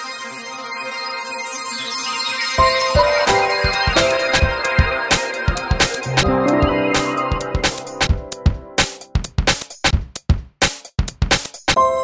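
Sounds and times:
programmed kick and snare hits: 0:03.0 - 0:11.8.

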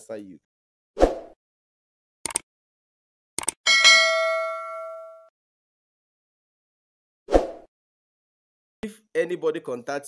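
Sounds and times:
notification bell chime: 0:03.7 - 0:05.3.

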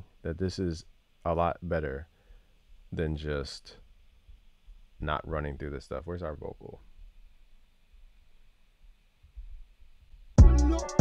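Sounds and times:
faint low room hum: 0:00.0 - 0:10.4.

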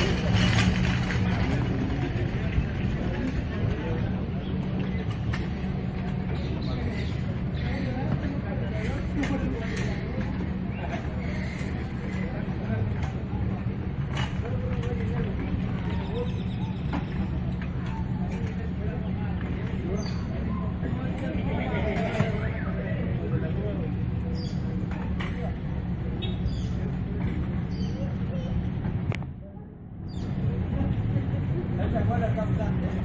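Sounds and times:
people talking indistinctly: 0:00.0 - 0:33.0.

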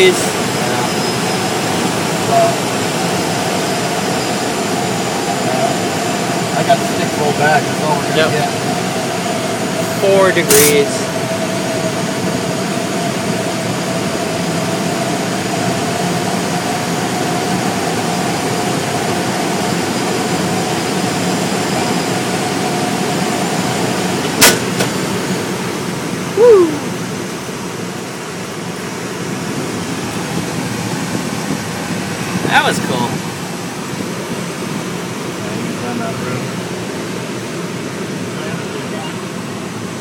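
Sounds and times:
thin steady whistle: 0:26.3 - 0:27.0.

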